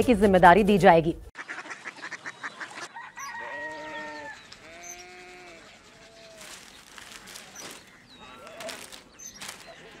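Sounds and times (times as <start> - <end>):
farm animal calling: 1.4 - 10.0
faint rustling: 5.8 - 10.0.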